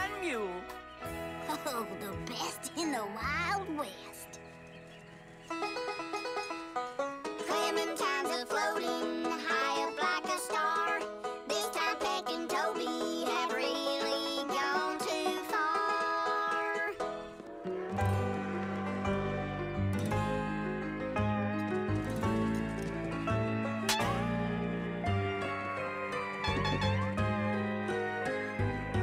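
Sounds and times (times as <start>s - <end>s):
plucked banjo: 5.5s - 29.0s
cartoon voices singing: 7.4s - 17.0s.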